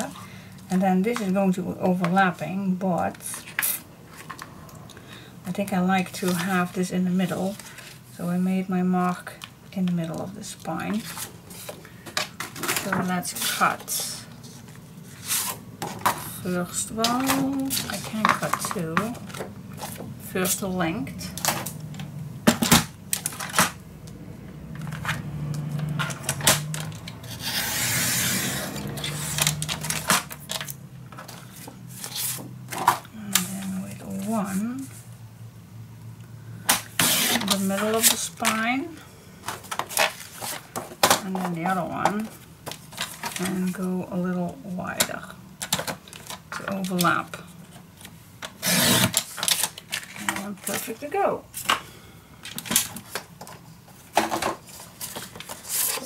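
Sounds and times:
woman's soft voice: 16.4 - 19.2, 33.1 - 35.0, 37.4 - 39.1, 46.6 - 47.5, 50.2 - 51.5
paper trimmer swishing cut: 27.3 - 29.6.

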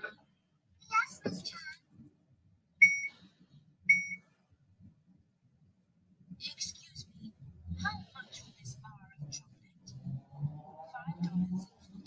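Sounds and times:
short electronic beeps: 2.8 - 3.2, 3.9 - 4.3.

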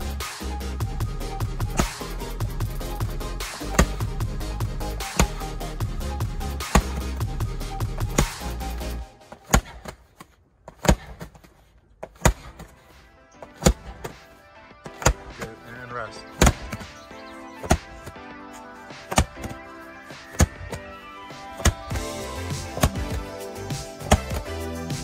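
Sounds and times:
background music: 0.0 - 9.7, 12.1 - 25.0
medicine ball thudding on mat: 3.6 - 4.1, 6.7 - 7.1, 12.0 - 12.7, 16.4 - 16.9, 24.0 - 24.5.

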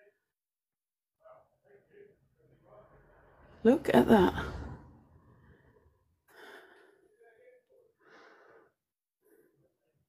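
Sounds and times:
faint breaths: 4.3 - 10.0.

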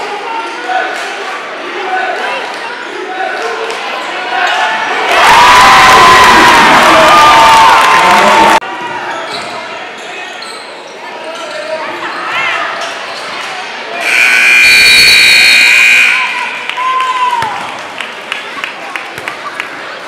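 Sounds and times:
gym crowd noise: 0.0 - 20.0
sneaker squeaks on hardwood: 9.1 - 10.8
scoreboard buzzer: 14.0 - 16.6.

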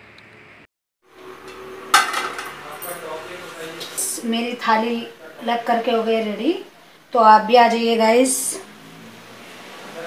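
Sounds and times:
steel plate and bowl clinking: 1.4 - 3.1.

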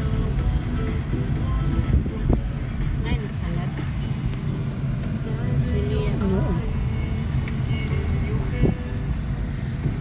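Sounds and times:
car cabin low rumble: 0.0 - 10.0.

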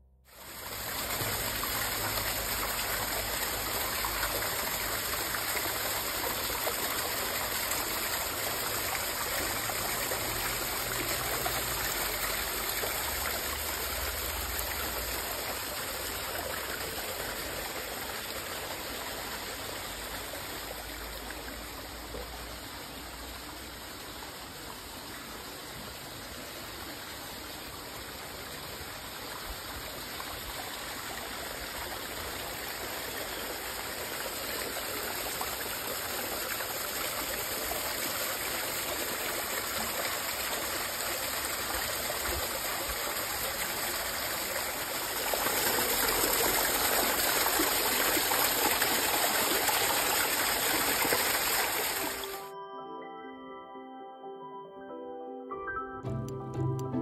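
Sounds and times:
water running along stone channel: 0.3 - 52.4.

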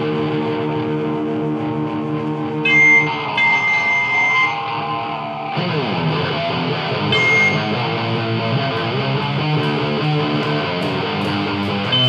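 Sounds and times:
rock band playing live: 0.0 - 12.0
high sustained guitar note: 1.6 - 9.2.

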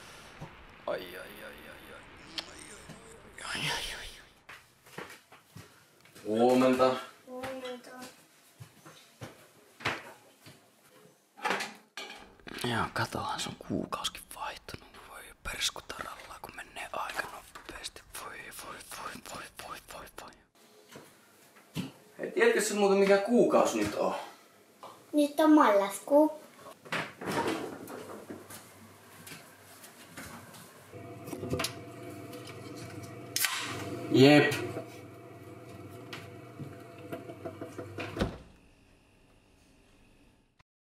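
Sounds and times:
person whispering: 1.0 - 4.4, 12.5 - 20.5.

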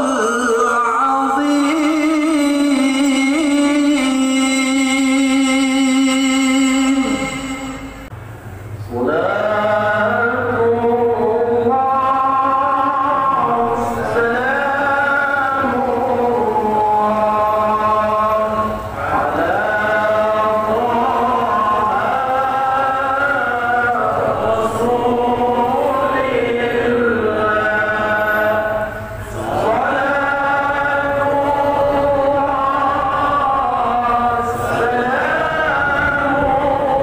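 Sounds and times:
devotional chanting: 0.0 - 37.0.

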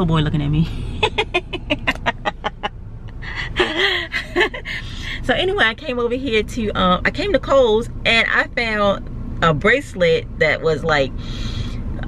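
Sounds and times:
woman laughing: 1.0 - 5.2.

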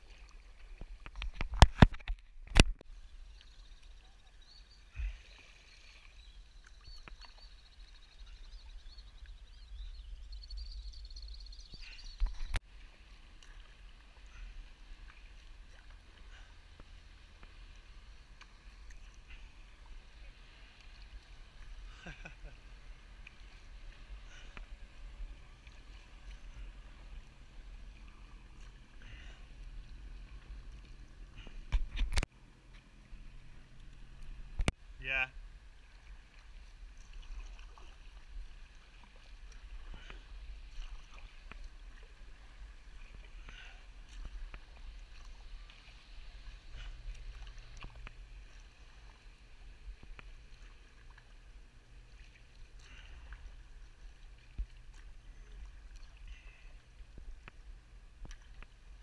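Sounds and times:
water lapping at hull: 0.0 - 59.0
paddle strokes: 11.6 - 59.0.

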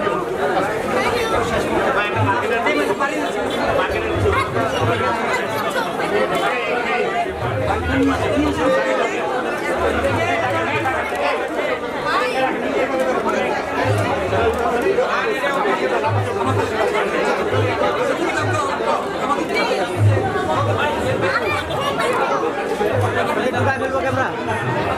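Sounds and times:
crowd chatter: 0.0 - 24.9.

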